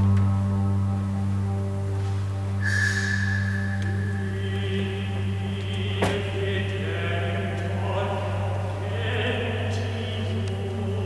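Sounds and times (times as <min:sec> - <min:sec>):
low electronic drone: 0:00.0 - 0:11.0
high held tone with hiss: 0:02.5 - 0:05.8
held electronic tones: 0:02.6 - 0:06.6.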